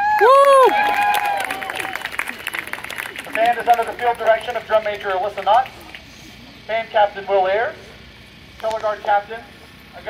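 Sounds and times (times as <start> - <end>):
person whooping: 0.0 - 2.4
spectators clapping and cheering: 0.0 - 6.1.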